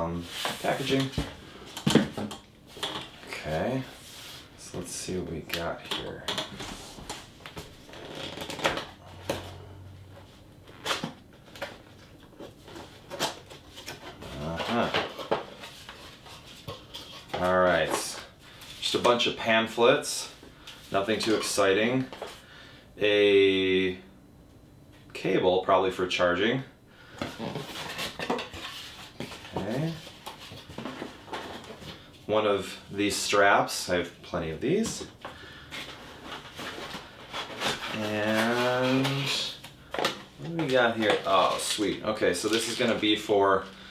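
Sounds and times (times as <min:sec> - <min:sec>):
person speaking: 0:00.0 - 0:01.3, 0:04.6 - 0:06.9, 0:14.2 - 0:15.1, 0:29.5 - 0:30.1, 0:32.3 - 0:35.2, 0:37.8 - 0:39.7, 0:40.4 - 0:43.9
cardboard packaging handled: 0:34.7 - 0:43.7.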